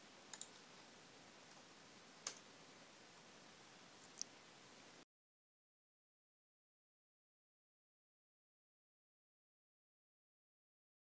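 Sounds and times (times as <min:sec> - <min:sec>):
faint computer clicks: 0:00.3 - 0:00.6, 0:02.2 - 0:02.4.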